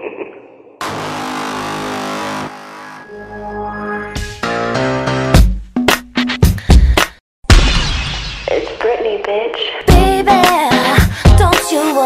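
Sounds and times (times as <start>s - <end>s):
sustained electronic chord: 0.8s - 5.3s.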